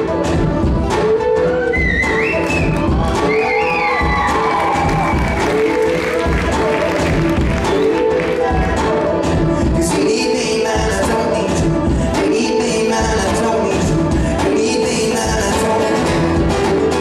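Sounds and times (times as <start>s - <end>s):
beatboxing into a microphone: 0.0s - 17.0s
looped beatboxed beat: 0.0s - 17.0s
looped vocal harmonies: 3.3s - 17.0s.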